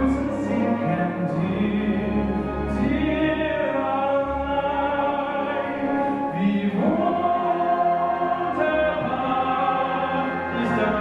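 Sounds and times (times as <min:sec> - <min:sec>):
man singing operatically: 0:00.0 - 0:11.0
symphony orchestra with strings: 0:00.0 - 0:11.0.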